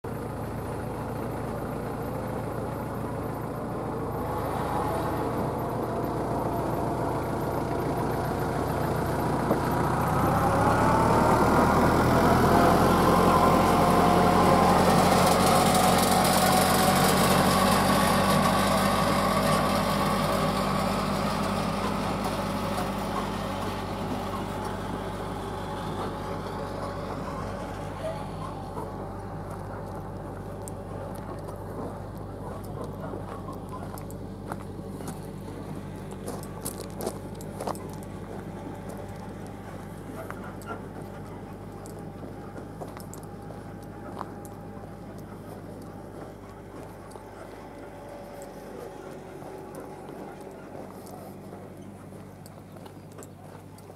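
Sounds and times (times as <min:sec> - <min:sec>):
vehicle engine running: 0:00.0 - 0:53.9.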